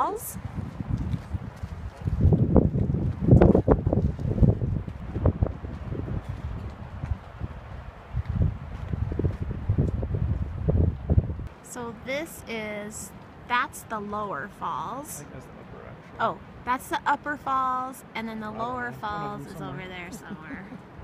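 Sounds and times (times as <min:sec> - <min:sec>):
wind buffeting microphone: 0:00.0 - 0:11.5.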